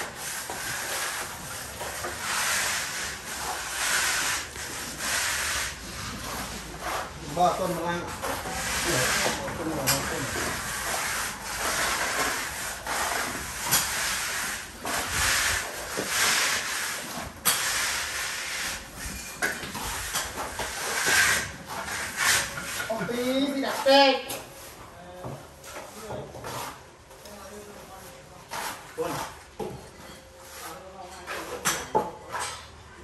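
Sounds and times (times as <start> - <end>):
plastering tool scraping render: 0.0 - 24.8, 28.5 - 32.6.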